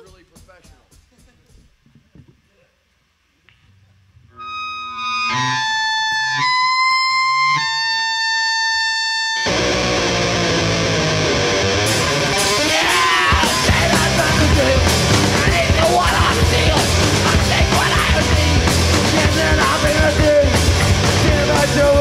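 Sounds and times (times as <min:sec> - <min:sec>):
distorted electric guitar: 0:04.2 - 0:22.0
punk rock band playing: 0:04.4 - 0:22.0.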